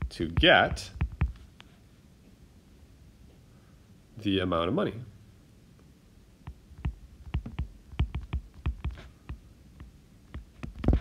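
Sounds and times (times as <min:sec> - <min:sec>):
stylus tapping on glass screen: 0:00.3 - 0:01.4, 0:06.5 - 0:11.0.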